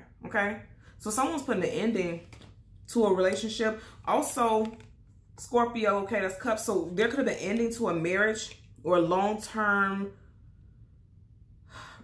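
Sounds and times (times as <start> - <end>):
woman inhaling: 11.6 - 12.0.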